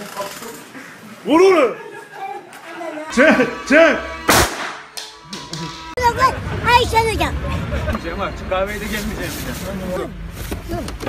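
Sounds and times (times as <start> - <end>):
pistol shot: 4.3 - 4.9.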